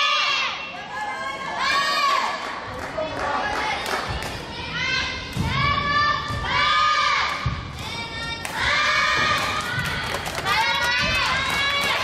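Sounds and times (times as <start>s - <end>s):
girls shouting cheering calls: 8.5s - 12.0s.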